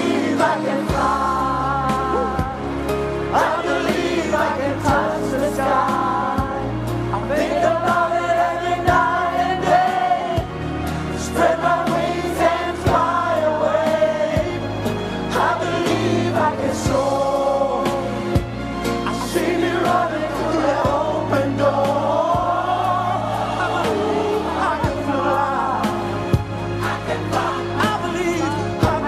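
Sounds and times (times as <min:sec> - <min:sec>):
bass: 0:00.0 - 0:29.0
choir voices: 0:00.0 - 0:29.0
steady drum beat: 0:11.4 - 0:14.6, 0:19.4 - 0:29.0.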